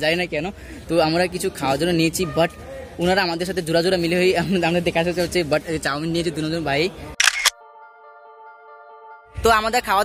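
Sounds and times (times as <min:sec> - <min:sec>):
camera shutter click: 0:07.2 - 0:07.6
steady electronic chord: 0:07.6 - 0:10.0.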